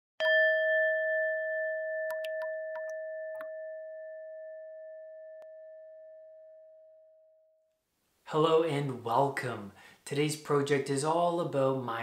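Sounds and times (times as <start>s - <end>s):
bell-like chime ringing: 0.2s - 7.7s.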